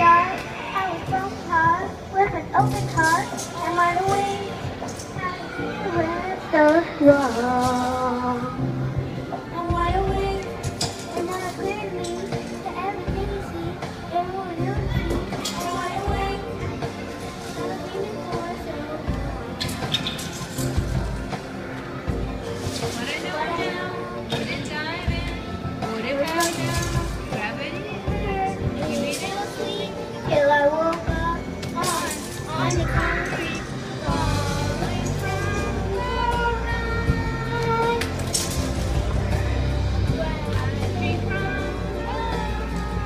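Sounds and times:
girl singing into microphone: 0:00.0 - 0:19.7, 0:26.1 - 0:43.0
children's voices: 0:00.0 - 0:43.0
karaoke backing track: 0:00.0 - 0:43.0.

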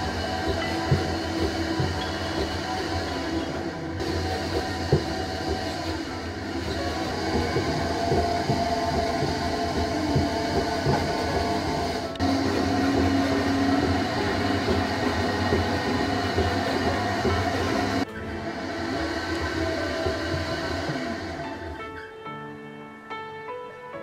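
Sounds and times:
potter's wheel humming: 0:00.0 - 0:22.1.

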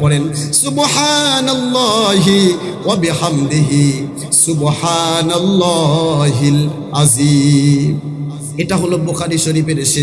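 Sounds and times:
man chanting over loudspeaker: 0:00.0 - 0:10.0.

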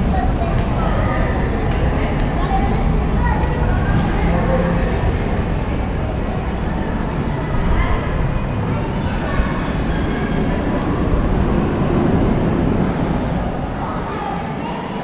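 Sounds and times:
steady low rumble: 0:00.0 - 0:14.6
indistinct voices: 0:00.0 - 0:15.0.

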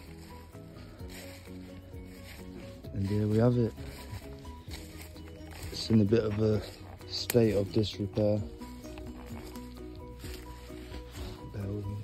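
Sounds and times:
quiet ambient music: 0:00.0 - 0:12.0.

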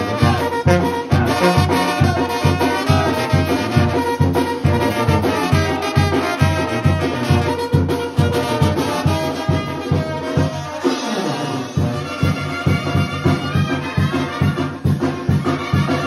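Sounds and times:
bass drum and sousaphone beat: 0:00.0 - 0:16.0
trumpets and trombones: 0:00.0 - 0:16.0.

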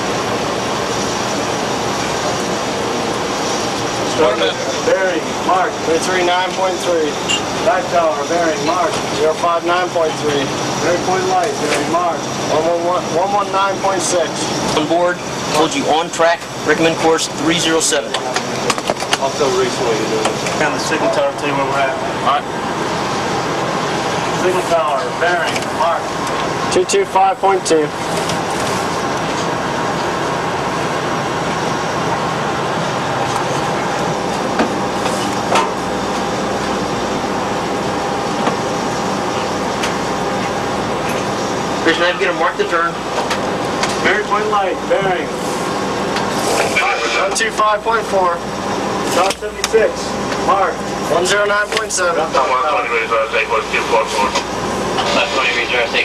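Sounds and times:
steady background hum: 0:00.0 - 0:56.0.

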